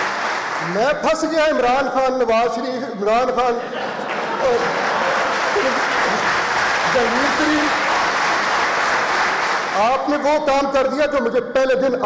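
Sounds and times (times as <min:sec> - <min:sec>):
audience applauding: 0:00.0 - 0:01.6, 0:03.6 - 0:10.4
man's voice: 0:00.6 - 0:04.8, 0:06.8 - 0:07.8, 0:09.7 - 0:12.0.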